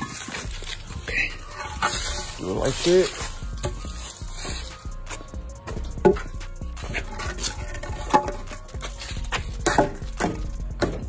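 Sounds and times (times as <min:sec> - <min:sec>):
footsteps scuffing on gravel: 0:00.0 - 0:11.0.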